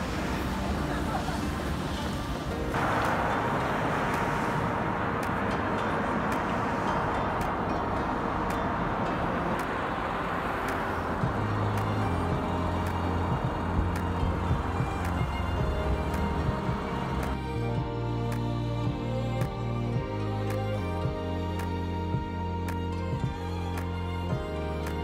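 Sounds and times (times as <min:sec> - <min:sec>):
background music: 0:00.0 - 0:25.0
car traffic rushing: 0:00.0 - 0:25.0.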